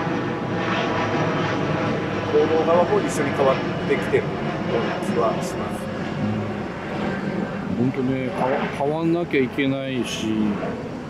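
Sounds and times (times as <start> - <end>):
man's voice: 6.2 - 6.5.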